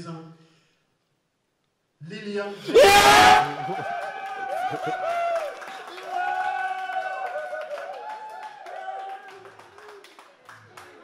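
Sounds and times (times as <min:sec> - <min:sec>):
loud shout: 0:02.6 - 0:09.5
people cheering and screaming: 0:02.7 - 0:09.4.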